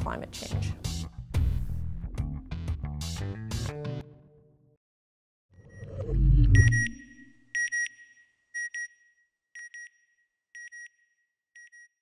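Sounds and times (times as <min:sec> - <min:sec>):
electronic double beep: 0:05.6 - 0:07.9
low electronic whoosh falling: 0:05.7 - 0:07.3.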